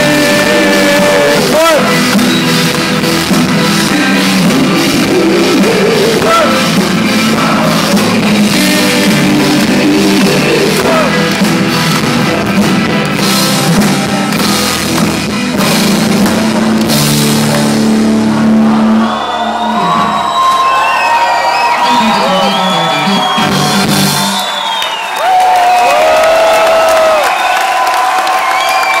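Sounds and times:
live rock band playing: 0.0 - 27.4.

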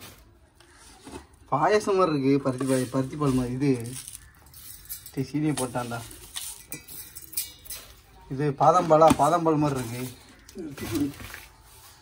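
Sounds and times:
utensil clinking on steel bowl: 3.8 - 8.2.

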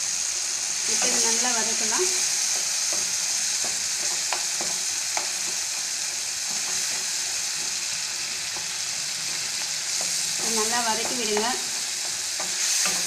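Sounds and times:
vegetables sizzling in oil: 0.0 - 13.0
spatula scraping and tapping pan: 0.9 - 13.0.

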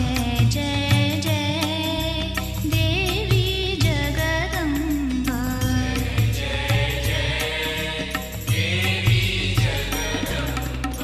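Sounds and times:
devotional song: 0.0 - 11.0
steady drum beat: 0.0 - 11.0.

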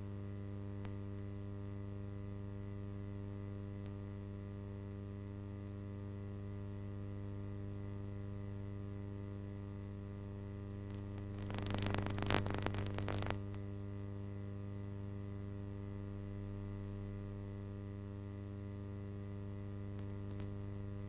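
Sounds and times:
crackling static: 0.0 - 1.5, 2.2 - 5.9, 9.5 - 13.8, 16.2 - 21.0
electrical mains hum: 0.0 - 21.0.

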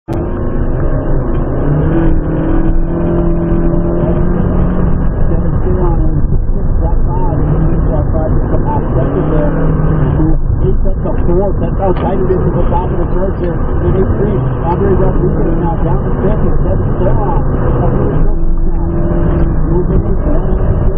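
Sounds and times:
road and tyre noise: 0.0 - 20.9
car engine revving: 0.1 - 20.9.

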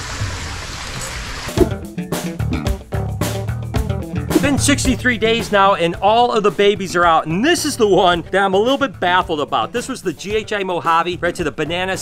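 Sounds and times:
guitar music: 1.5 - 10.8.

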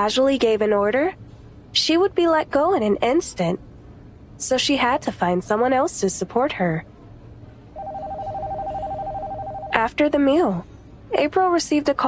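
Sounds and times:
telephone ringing: 7.8 - 10.0.

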